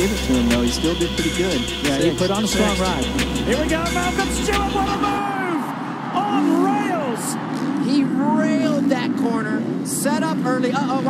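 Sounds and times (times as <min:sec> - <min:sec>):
motocross bike engines revving: 0:00.0 - 0:05.2, 0:06.2 - 0:11.0
stadium crowd noise: 0:05.0 - 0:08.3.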